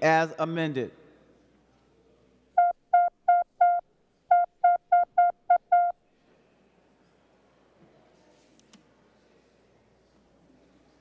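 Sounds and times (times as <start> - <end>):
short electronic beeps: 2.6 - 6.0.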